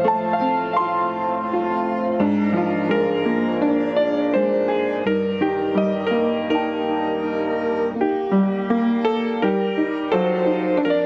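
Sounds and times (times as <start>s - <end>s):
slow piano melody: 0.0s - 11.0s.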